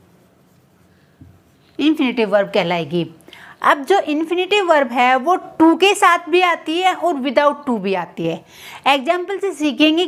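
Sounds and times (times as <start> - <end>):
woman speaking: 1.8 - 10.0.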